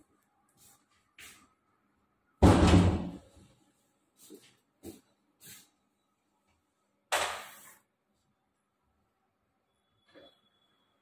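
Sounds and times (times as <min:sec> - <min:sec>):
door banging shut: 0:02.4 - 0:03.2.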